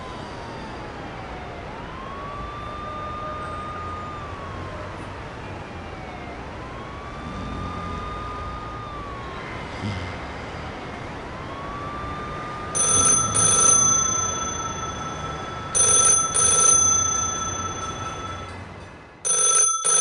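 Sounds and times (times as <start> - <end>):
faint siren: 0.0 - 20.0
telephone ringing: 12.8 - 20.0.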